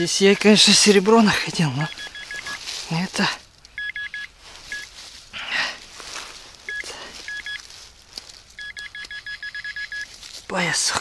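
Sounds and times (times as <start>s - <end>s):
metal detector pinpointer beeping: 0.0s - 2.6s, 3.7s - 4.9s, 6.7s - 7.6s, 8.6s - 10.1s.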